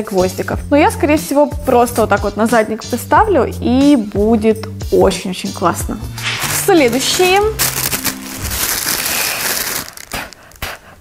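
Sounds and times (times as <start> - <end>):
plastic bag crinkling: 6.1 - 10.7.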